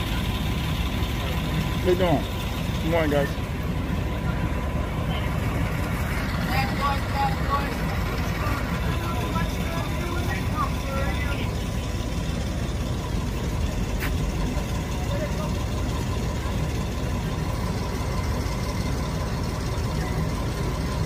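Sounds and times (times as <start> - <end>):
faint voices talking: 0.0 - 21.0
vehicle engine idling: 0.0 - 21.0.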